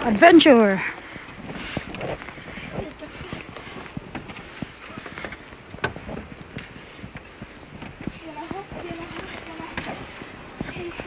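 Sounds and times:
footsteps on wooden planks: 0.0s - 11.0s.

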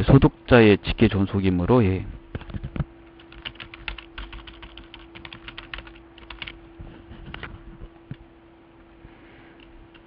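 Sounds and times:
faint steady hum: 0.0s - 10.0s
computer keyboard typing: 2.4s - 6.6s.

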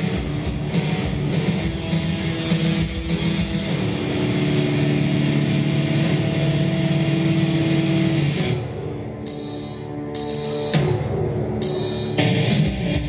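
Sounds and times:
bass guitar: 0.0s - 13.0s
distorted electric guitar: 0.0s - 13.0s.

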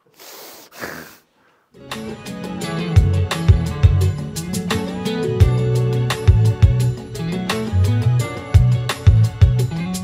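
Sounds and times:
music: 1.8s - 10.0s.

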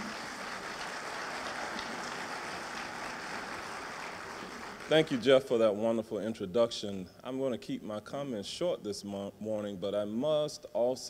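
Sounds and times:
audience applauding: 0.0s - 5.3s.

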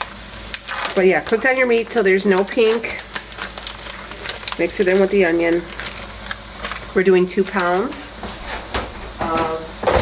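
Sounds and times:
meat sizzling in a frying pan: 0.0s - 8.2s.

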